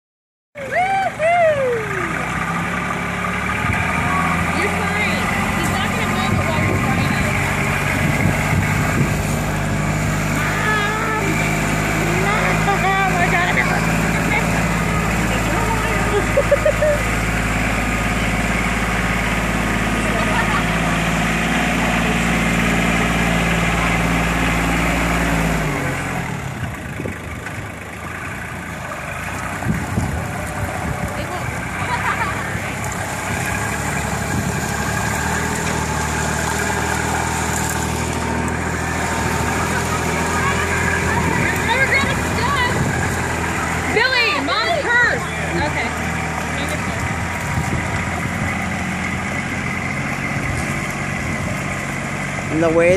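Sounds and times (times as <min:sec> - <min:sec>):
diesel tractor engine running: 0:00.6 - 0:52.9
children's voices: 0:39.5 - 0:45.8.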